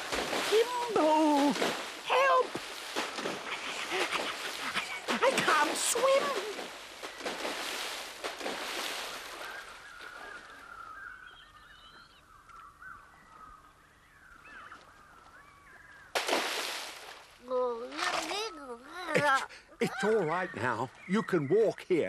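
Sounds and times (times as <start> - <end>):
cartoon water splashing: 0.0 - 9.8, 16.2 - 17.2.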